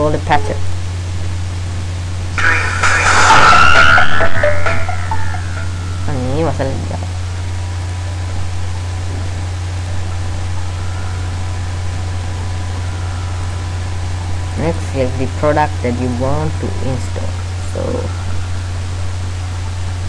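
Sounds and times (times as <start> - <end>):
microphone low hum and hiss: 0.0 - 20.0.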